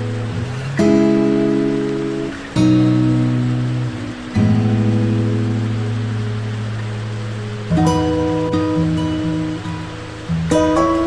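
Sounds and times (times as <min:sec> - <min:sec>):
acoustic guitar chord ringing: 0:00.0 - 0:11.0
flowing water hiss: 0:00.0 - 0:11.0.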